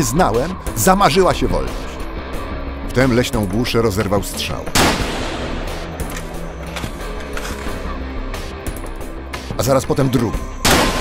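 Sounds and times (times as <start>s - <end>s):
dark film music with low tones: 0.0s - 11.0s.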